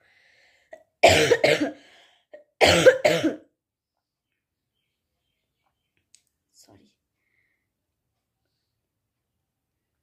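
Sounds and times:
woman coughing: 0:01.0 - 0:01.8, 0:02.4 - 0:03.5.

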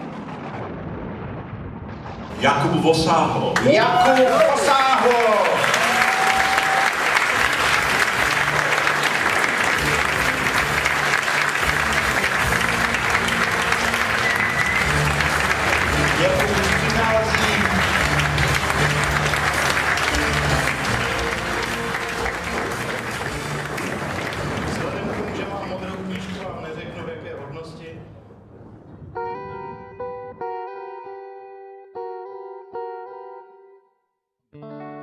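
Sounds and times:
audience applause: 0:03.6 - 0:27.1
music with bass notes: 0:07.4 - 0:24.8.

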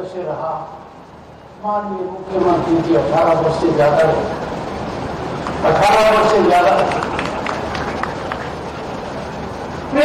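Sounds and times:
crowd noise: 0:02.3 - 0:10.0
sharp claps: 0:06.8 - 0:08.6.

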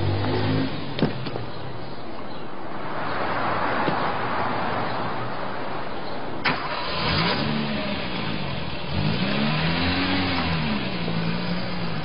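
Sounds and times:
car engine starting and idling: 0:06.4 - 0:12.0.

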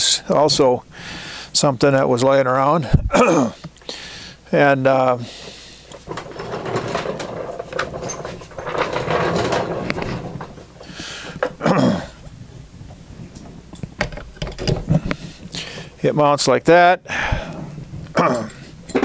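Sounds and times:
metal scraping on wood: 0:04.9 - 0:16.1
knocks and clicks: 0:12.9 - 0:15.9.

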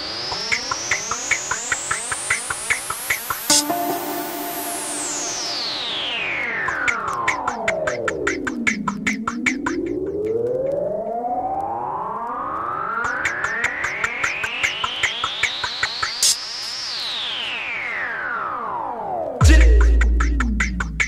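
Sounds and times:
rising synthesizer sweep: 0:03.5 - 0:06.3
drum and bass track: 0:19.4 - 0:21.0.

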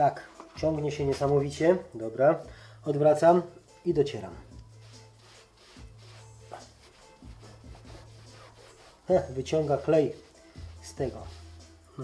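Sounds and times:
faint background music: 0:00.0 - 0:12.0
towel rubbing on car panel: 0:04.8 - 0:11.7.

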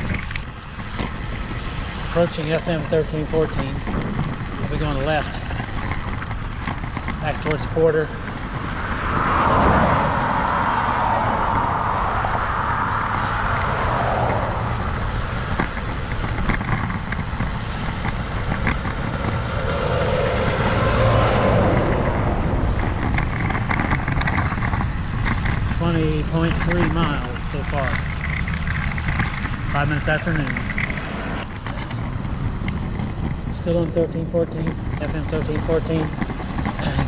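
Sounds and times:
passing motor traffic: 0:00.0 - 0:37.0
truck going by: 0:00.0 - 0:37.0
wind and road noise: 0:00.0 - 0:37.0.

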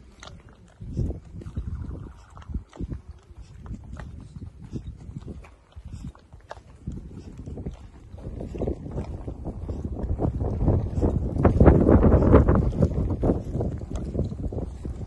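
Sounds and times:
footsteps on cobblestones: 0:00.0 - 0:15.0.

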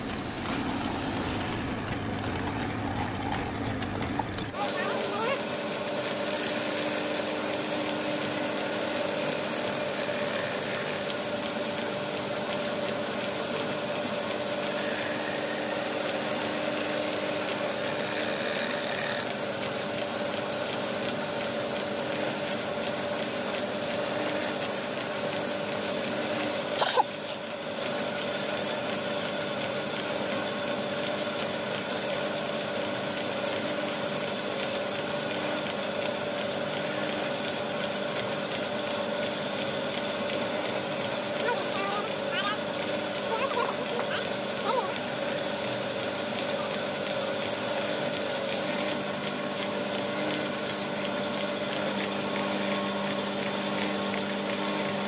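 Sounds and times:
lathe spindle running: 0:00.0 - 0:55.0.

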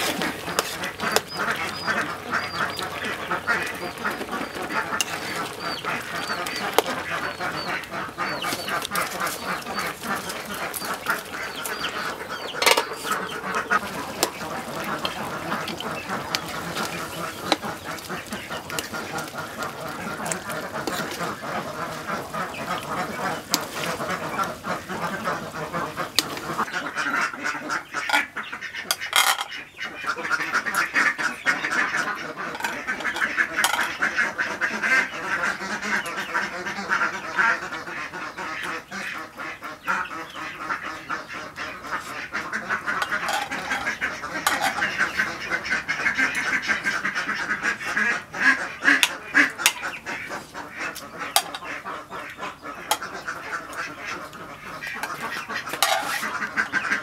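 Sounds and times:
chorus of animal calls: 0:00.0 - 0:57.0.

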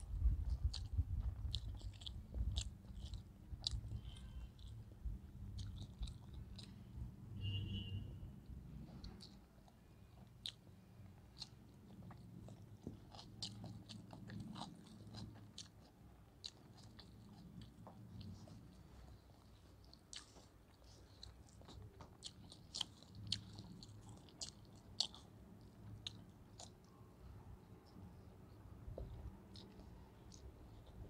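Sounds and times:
person chewing with wet clicks: 0:00.0 - 0:07.8, 0:08.4 - 0:31.0.

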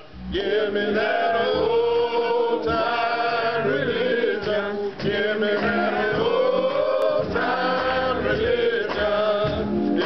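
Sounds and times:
men singing gospel in harmony: 0:00.3 - 0:10.0.

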